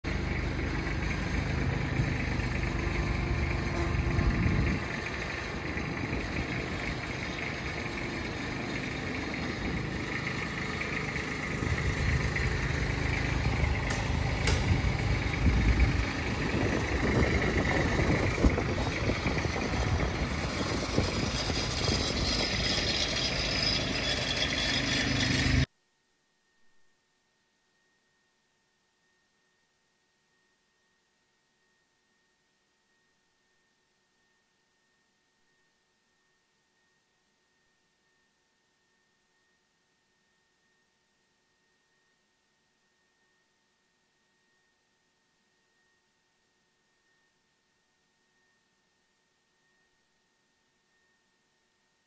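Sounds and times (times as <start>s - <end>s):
tractor engine rumbling: 0.0s - 25.7s.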